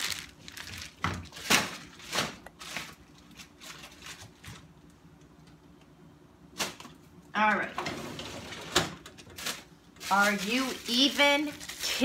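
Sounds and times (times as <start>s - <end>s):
plastic bags rustling and crinkling: 0.0s - 4.7s, 8.4s - 12.0s.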